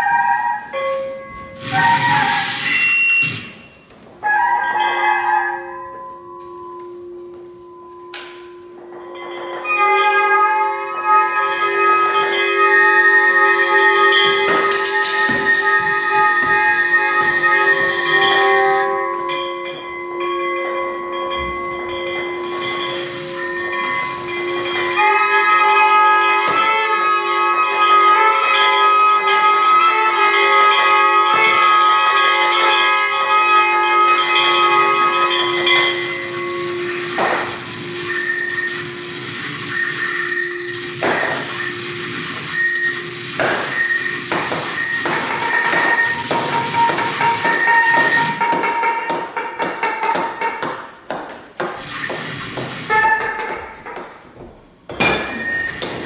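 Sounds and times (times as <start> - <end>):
guitar and electronic drone: 1.2 - 3.9, 6.2 - 48.6, 51.6 - 54.2
sharp percussion knocks: 34.4 - 54.2.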